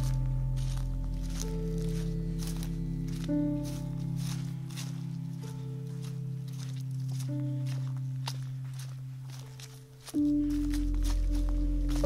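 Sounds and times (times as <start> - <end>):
footsteps on muddy dirt track: 0.0 - 12.0
soft music with held tones: 0.0 - 12.0.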